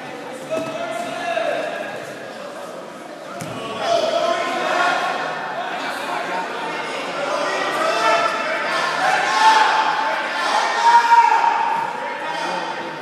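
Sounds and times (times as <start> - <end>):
voices shouting in a hall: 0.0 - 13.0.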